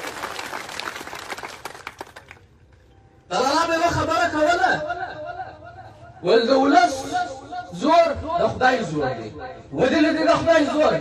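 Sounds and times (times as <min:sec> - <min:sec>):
crowd applauding: 0:00.0 - 0:02.6.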